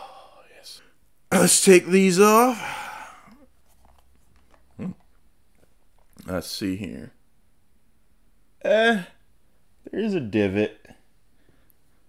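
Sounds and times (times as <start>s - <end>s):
short grunt or whimper: 4.8s - 5.0s.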